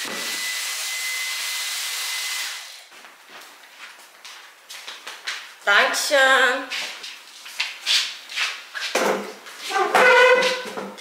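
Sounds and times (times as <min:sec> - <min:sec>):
vacuum cleaner running: 0:00.0 - 0:03.0.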